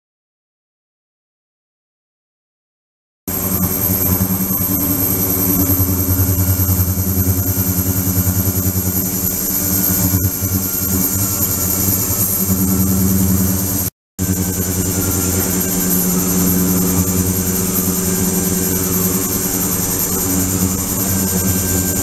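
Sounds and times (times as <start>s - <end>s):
ultrasonic tank humming with whine: 3.3s - 22.0s.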